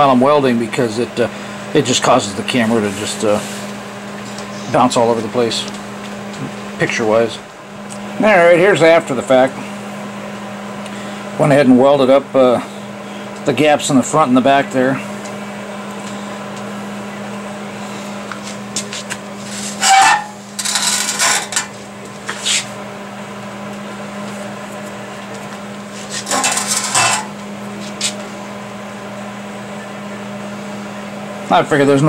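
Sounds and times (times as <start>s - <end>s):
low hum of shop equipment: 0.0s - 32.0s.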